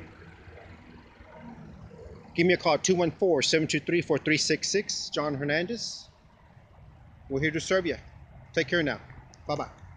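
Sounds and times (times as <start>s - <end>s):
low steady rumble: 0.0s - 9.9s.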